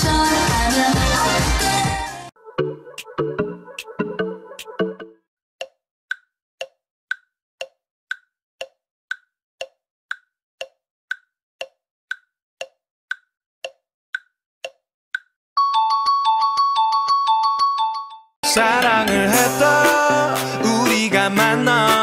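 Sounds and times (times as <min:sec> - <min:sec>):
pop music: 0:00.0 - 0:05.1, 0:18.4 - 0:22.0
countdown timer ticking: 0:02.6 - 0:16.2, 0:18.4 - 0:22.0
bright mallet chime: 0:15.6 - 0:18.2.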